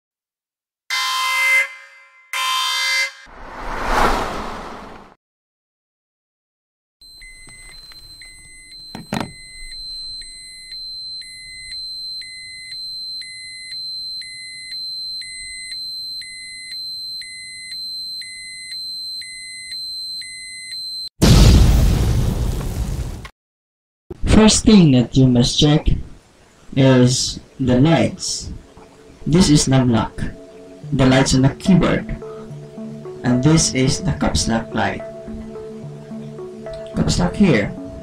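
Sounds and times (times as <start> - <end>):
horn-like blasts: 0.9 - 3.3
whoosh: 3.3 - 5.2
short beeps: 7.0 - 21.1.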